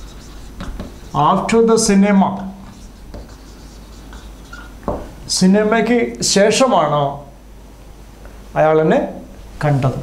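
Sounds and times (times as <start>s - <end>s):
marker scratching on whiteboard: 0.0s - 5.1s.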